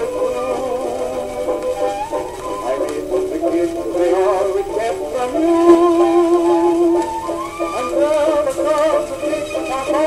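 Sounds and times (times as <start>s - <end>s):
old record music playing: 0.0s - 10.0s.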